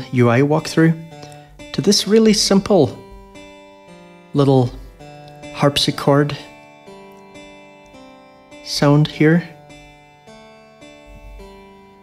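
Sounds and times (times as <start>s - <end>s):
harpsichord plucked notes: 0.0s - 12.0s.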